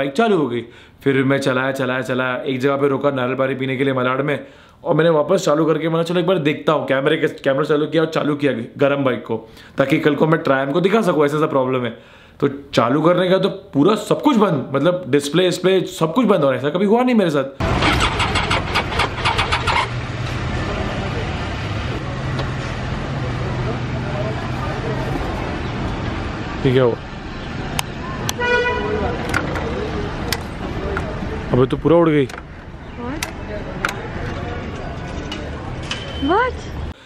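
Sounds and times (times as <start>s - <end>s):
motorcycle starter clicking: 17.6s - 20.0s
vehicle engines rumbling: 17.6s - 37.0s.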